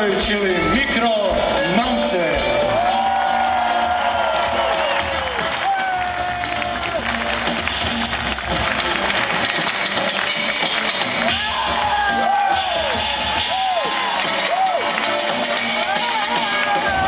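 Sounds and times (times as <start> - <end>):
crowd noise: 0.0 - 17.0
live band music: 0.0 - 17.0.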